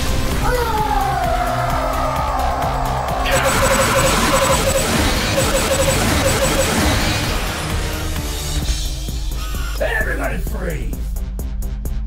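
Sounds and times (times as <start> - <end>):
action film music: 0.0 - 12.0
sci-fi sound effects: 3.2 - 7.7
rapid pulsing beep: 3.3 - 7.3
burst of noise: 3.3 - 7.4.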